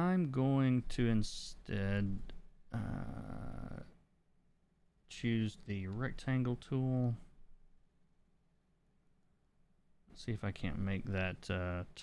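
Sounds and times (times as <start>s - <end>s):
man murmuring: 2.7s - 4.0s.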